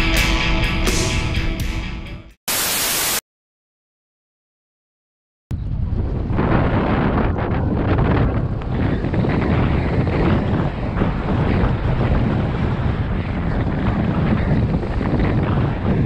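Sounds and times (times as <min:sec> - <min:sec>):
snowboard hissing through snow: 0:02.5 - 0:03.2
wind buffeting microphone: 0:05.5 - 0:16.0.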